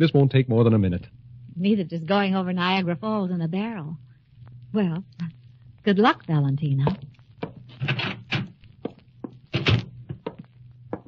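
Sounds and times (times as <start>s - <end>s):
door closing with a thunk: 9.5s - 10.2s.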